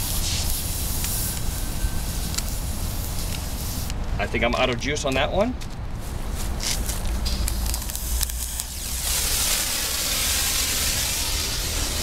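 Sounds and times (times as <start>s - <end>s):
cutting torch hiss and sizzle: 0.0s - 4.0s, 6.6s - 12.0s.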